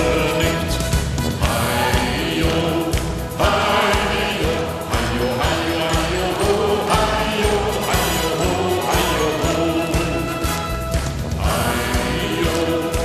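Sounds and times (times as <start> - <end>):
audience clapping along: 0.0 - 13.0
live band music: 0.0 - 13.0.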